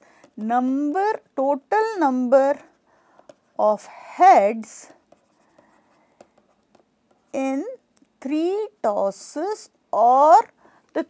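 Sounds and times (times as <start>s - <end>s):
stylus scratching on tablet screen: 2.3s - 4.0s, 4.7s - 7.5s.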